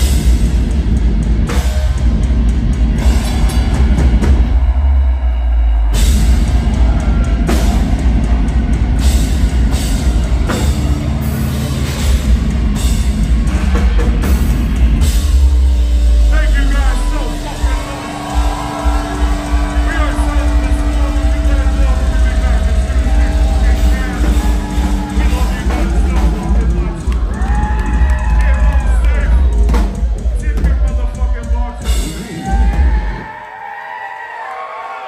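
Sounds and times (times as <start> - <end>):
distorted guitars and bass: 0.0 - 33.2
heavy metal band playing: 0.0 - 33.3
pounding drums: 0.0 - 33.3
crowd yelling: 0.0 - 35.0.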